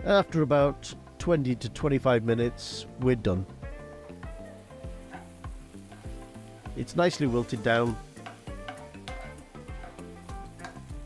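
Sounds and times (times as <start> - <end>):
soft background music: 0.0 - 11.0
vegetables sizzling in a pan: 2.7 - 11.0.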